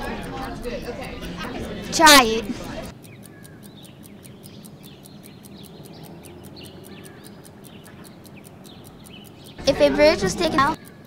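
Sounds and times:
birds chirping faintly: 0:00.0 - 0:11.0.

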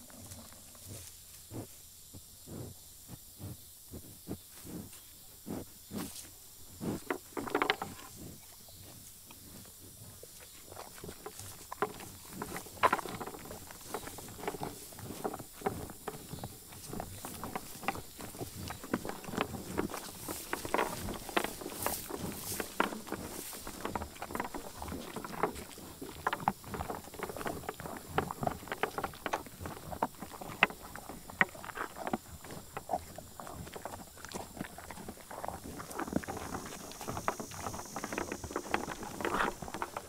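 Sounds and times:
animal crunching feed cubes: 0:06.8 - 0:08.2, 0:10.6 - 0:40.0.

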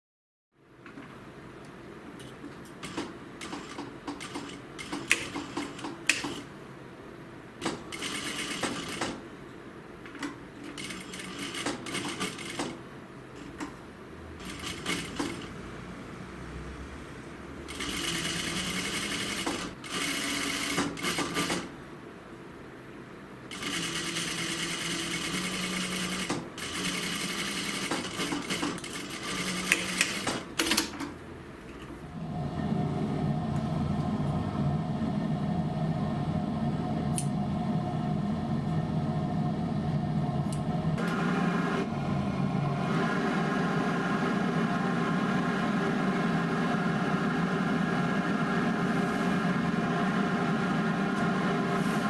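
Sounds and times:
sewing machine stitching: 0:02.8 - 0:06.5, 0:07.6 - 0:09.2, 0:10.6 - 0:12.8, 0:14.4 - 0:15.7, 0:17.7 - 0:21.7, 0:23.5 - 0:31.0.

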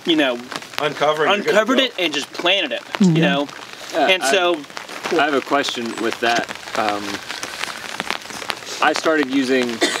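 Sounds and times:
light rain pattering: 0:00.0 - 0:10.0.

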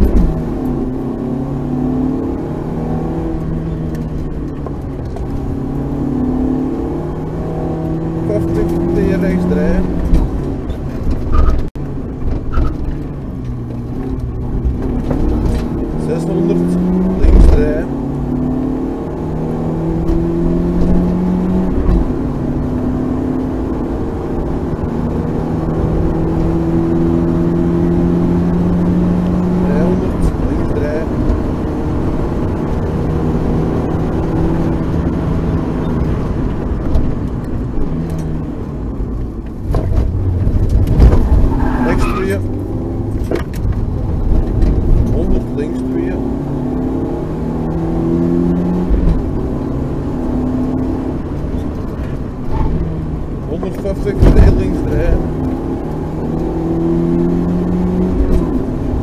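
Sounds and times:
rally car engine accelerating: 0:00.0 - 0:59.0
road noise: 0:00.0 - 0:59.0.

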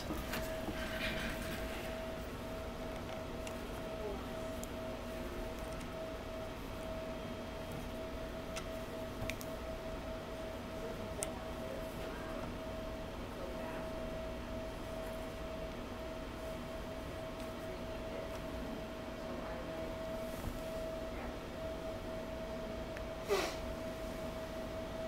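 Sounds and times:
faint steady whine: 0:00.0 - 0:25.0
low hum: 0:00.0 - 0:25.0.

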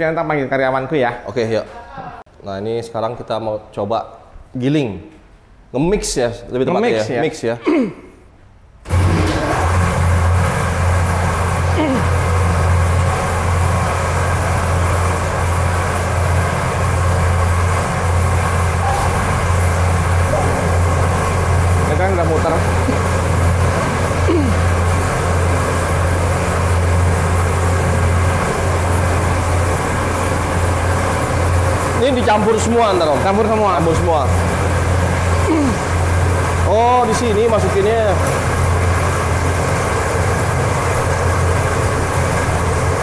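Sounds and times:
mechanical churning: 0:08.8 - 0:43.0
motor hum: 0:08.8 - 0:43.0.

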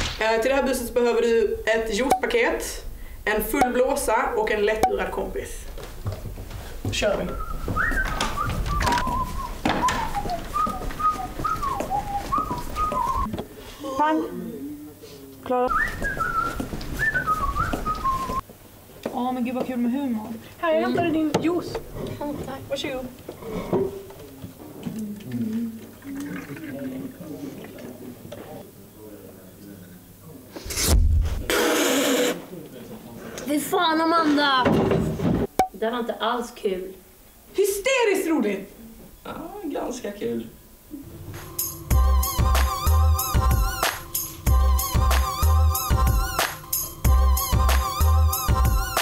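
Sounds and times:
person whistling a tune: 0:07.3 - 0:13.3, 0:15.7 - 0:18.4.

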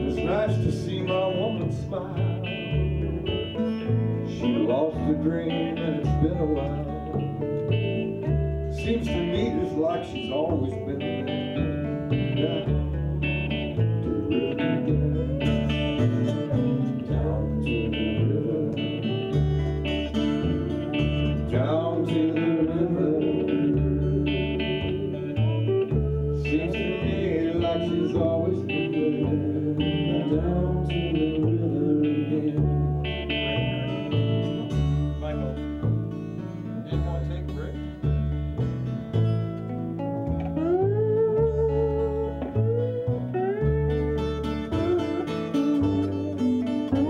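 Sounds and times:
acoustic guitar: 0:00.0 - 0:47.0
electric guitar lead: 0:00.0 - 0:47.0
upright bass: 0:00.0 - 0:47.0.

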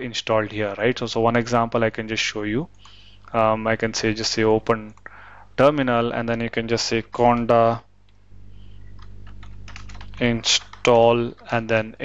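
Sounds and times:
low steady hum: 0:00.0 - 0:12.0
keyboard typing: 0:08.8 - 0:11.6.

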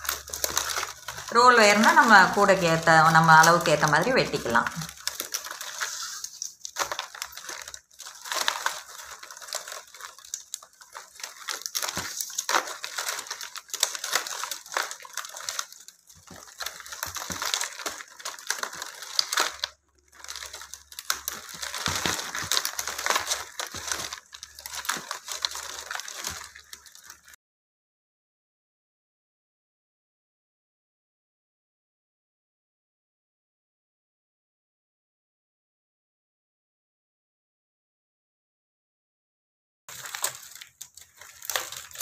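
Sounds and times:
plastic tape crinkling and rustling: 0:00.0 - 0:27.4, 0:39.9 - 0:42.0.

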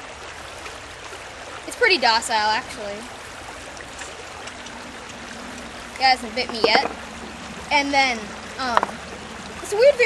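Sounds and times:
creek flowing: 0:00.0 - 0:10.0.

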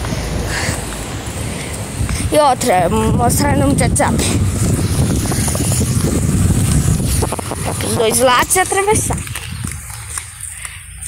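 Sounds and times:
footsteps on pavement: 0:00.0 - 0:03.1, 0:04.1 - 0:11.0
street noise: 0:00.0 - 0:11.0
wind rumble: 0:00.0 - 0:11.0.

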